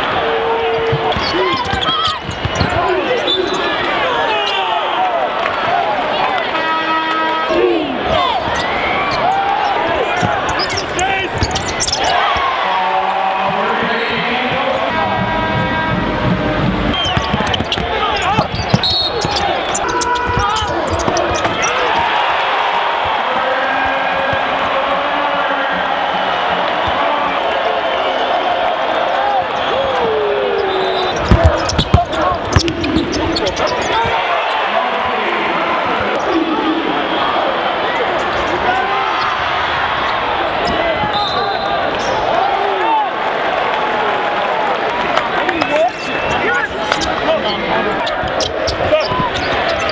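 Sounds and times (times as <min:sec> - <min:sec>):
arena crowd noise: 0:00.0 - 0:49.9
basketball dribbling on court: 0:00.7 - 0:02.9, 0:16.2 - 0:22.2, 0:31.2 - 0:34.2.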